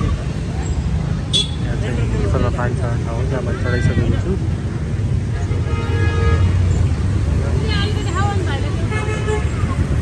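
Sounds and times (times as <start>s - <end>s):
street traffic rumbling: 0.0s - 10.0s
vehicle horn: 1.3s - 1.7s.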